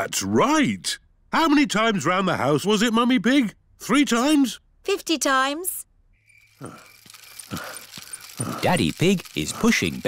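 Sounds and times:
faint high chirps: 6.2 - 8.6.

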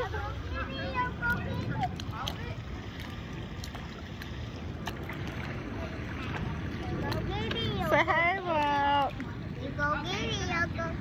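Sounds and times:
pool water splashing: 0.0 - 11.0
wind buffeting microphone: 0.0 - 11.0.

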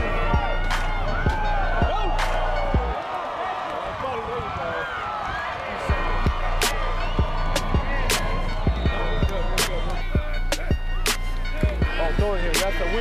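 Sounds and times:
deep bass and drums beat: 0.0 - 2.9, 5.9 - 13.0.

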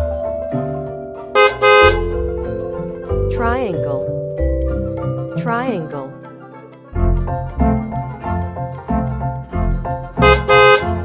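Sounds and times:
mallet percussion music: 0.0 - 11.0
cartoon truck horn honks: 1.2 - 2.2, 10.2 - 11.0.

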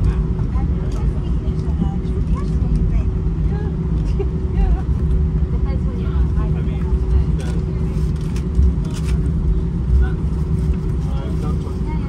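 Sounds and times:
aircraft engines rumbling: 0.0 - 12.0
constant hum: 0.0 - 12.0.

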